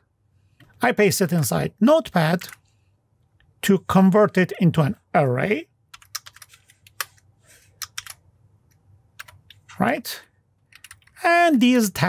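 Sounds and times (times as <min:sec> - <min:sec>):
typing on computer keyboard: 0:05.9 - 0:07.2, 0:07.8 - 0:08.2, 0:09.2 - 0:09.6, 0:10.7 - 0:11.2.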